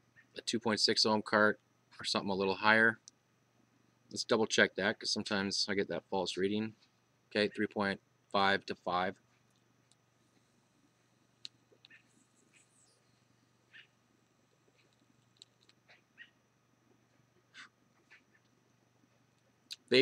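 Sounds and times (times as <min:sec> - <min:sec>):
steady low hum: 0:00.0 - 0:20.0
faint animal squeaks: 0:11.9 - 0:14.0, 0:15.9 - 0:16.4, 0:17.5 - 0:18.4.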